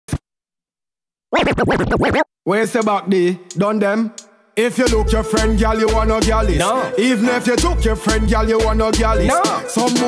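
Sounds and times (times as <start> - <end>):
record scratching on turntable: 1.3 - 2.3.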